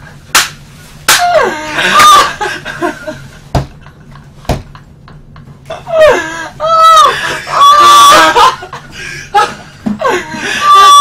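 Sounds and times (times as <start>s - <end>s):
hands smacking: 0.4s - 1.3s
women laughing loudly: 1.6s - 11.0s.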